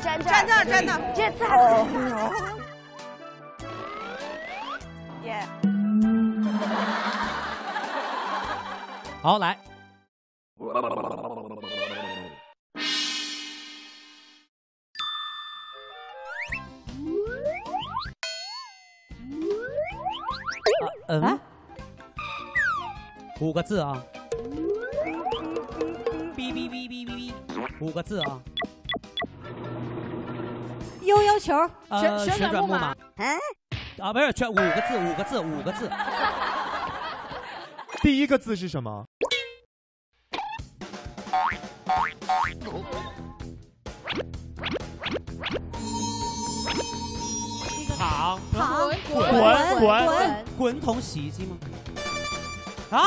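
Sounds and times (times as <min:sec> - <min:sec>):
short wobbling tone: 0:05.6 - 0:07.2
loud wobbling boing: 0:05.6 - 0:07.4
short rising notes: 0:05.6 - 0:07.7, 0:45.7 - 0:48.5
bouncy music beat: 0:24.2 - 0:29.3
light music: 0:45.7 - 0:53.0.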